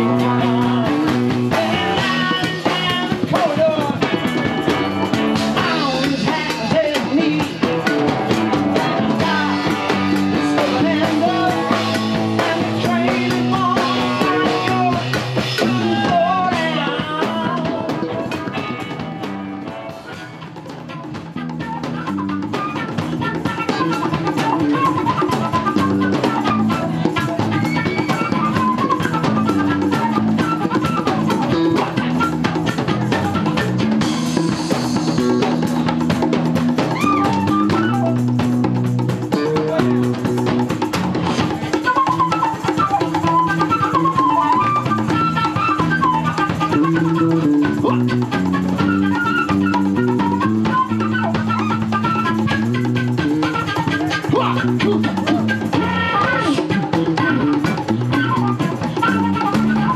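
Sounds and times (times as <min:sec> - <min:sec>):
flute melody: 0:00.0 - 0:59.9
live rock band playing: 0:00.0 - 0:59.9.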